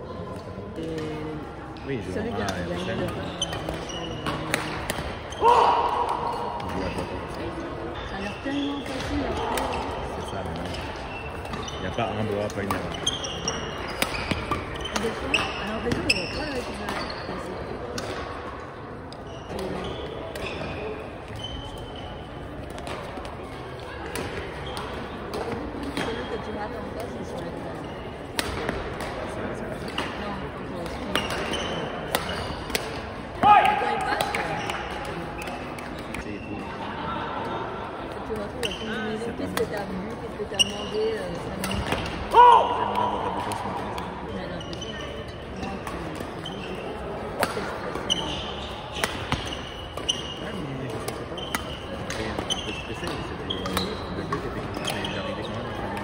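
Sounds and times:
voices echoing in hall: 0:00.0 - 0:56.0
shoes squeaking on hard floor: 0:02.3 - 0:04.5, 0:10.2 - 0:17.4, 0:40.5 - 0:41.7, 0:48.0 - 0:55.7.

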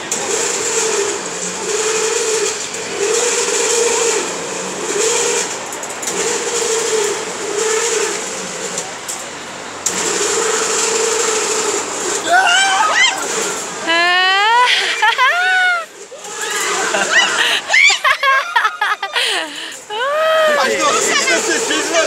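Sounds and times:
swing ride pivot squeaking: 0:00.0 - 0:22.0.

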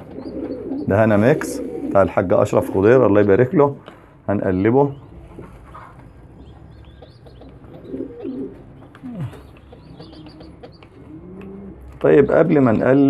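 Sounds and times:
pigeons cooing: 0:00.0 - 0:13.0.

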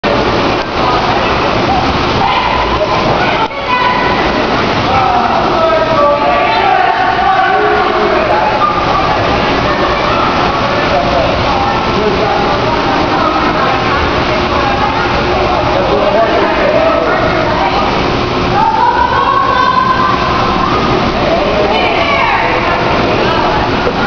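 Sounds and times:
indistinct voices: 0:00.0 - 0:24.0
water splashing: 0:00.0 - 0:24.0.

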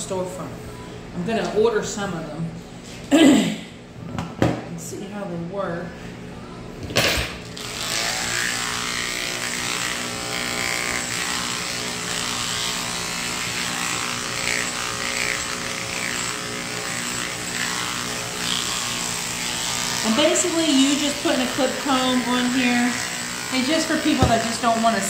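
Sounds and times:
electric clipper motor hum: 0:07.0 - 0:25.0.

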